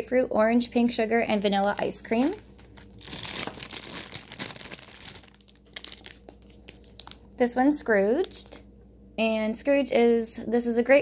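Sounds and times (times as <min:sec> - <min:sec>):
plastic bags crinkling: 0:01.3 - 0:07.4.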